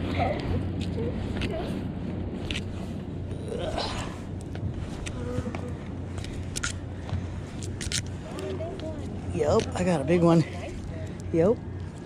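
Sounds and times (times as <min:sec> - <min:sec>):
low background rumble: 0:00.0 - 0:12.0
faint voices: 0:03.3 - 0:06.5.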